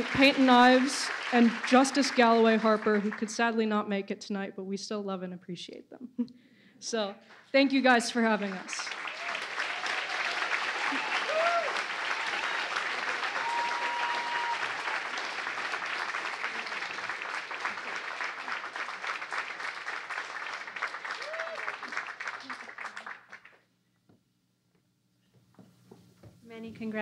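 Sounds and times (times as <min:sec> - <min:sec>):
audience applauding: 0:00.0 - 0:03.4, 0:08.2 - 0:23.6.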